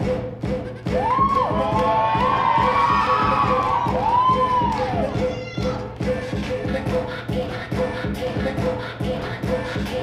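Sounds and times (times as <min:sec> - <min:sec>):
hip-hop dance music: 0:00.0 - 0:10.0
audience cheering: 0:00.9 - 0:05.3
high-pitched whoops: 0:00.9 - 0:05.8.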